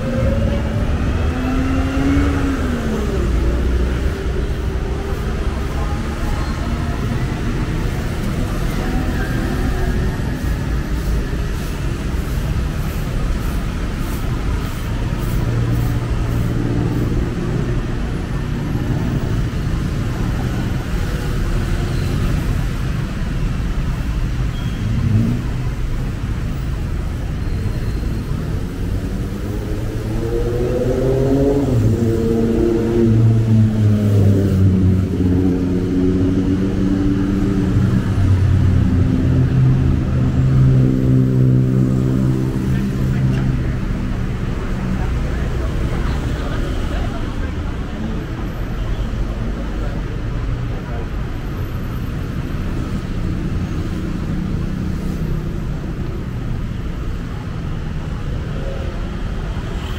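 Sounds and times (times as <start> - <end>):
cars and motorcycles passing: 0.0 - 59.9.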